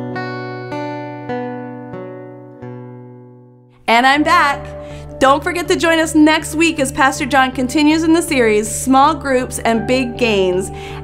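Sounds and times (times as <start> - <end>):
acoustic guitar strummed: 0.0 - 6.1
woman's voice: 3.8 - 11.0.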